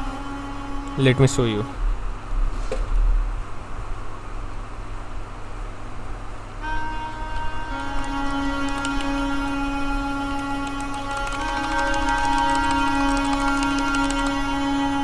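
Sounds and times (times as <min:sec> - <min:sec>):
harmonica chords: 0:00.0 - 0:01.7, 0:06.6 - 0:15.0
low rumble and hum: 0:00.0 - 0:08.6
computer key clicks: 0:07.8 - 0:09.4, 0:10.5 - 0:14.5.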